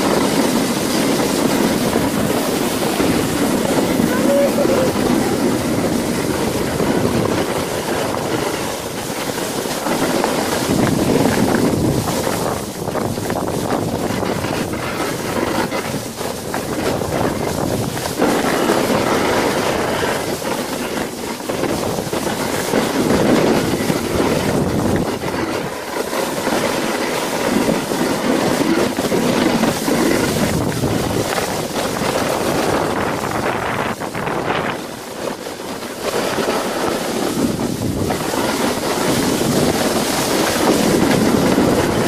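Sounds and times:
sledge runners hissing on snow: 0:00.0 - 0:42.0
wind on microphone: 0:00.0 - 0:42.0.

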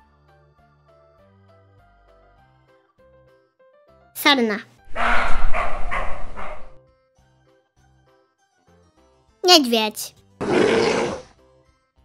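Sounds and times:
deer barking calls: 0:04.9 - 0:06.8.

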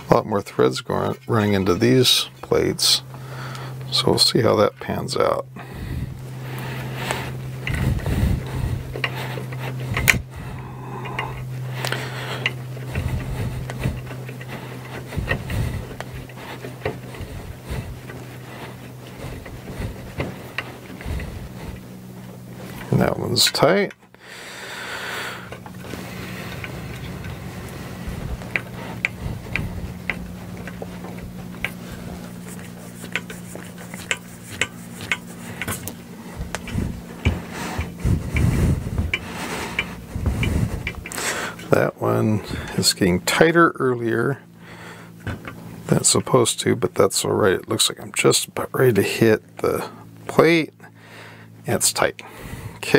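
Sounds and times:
steady low hum: 0:00.0 - 0:52.9
screws clicking and scraping metal: 0:06.6 - 0:24.1, 0:25.4 - 0:43.5.

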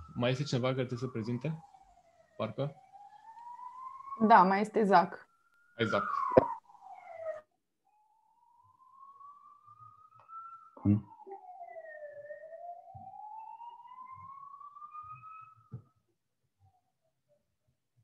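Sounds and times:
siren wailing faintly: 0:00.0 - 0:16.0.

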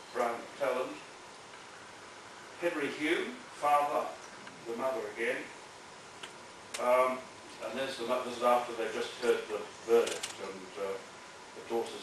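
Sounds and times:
man speaking off microphone: 0:00.2 - 0:01.1, 0:02.6 - 0:05.6, 0:06.8 - 0:12.0
rattle of small clicks: 0:10.0 - 0:10.5.

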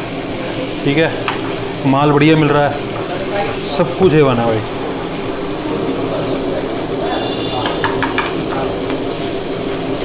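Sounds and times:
food sizzling in a frying pan: 0:00.0 - 0:10.0
low mechanical hum: 0:00.0 - 0:10.0.

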